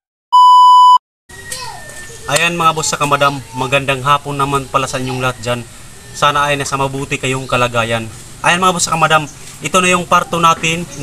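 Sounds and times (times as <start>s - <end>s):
loud electronic beep: 0.4s - 1.4s
faint background noise: 1.3s - 11.0s.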